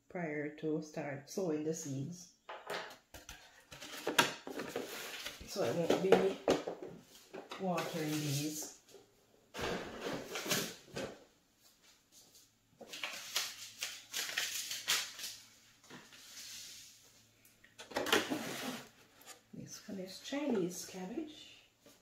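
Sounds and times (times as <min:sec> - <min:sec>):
plastic rustling: 0:12.8 - 0:16.8.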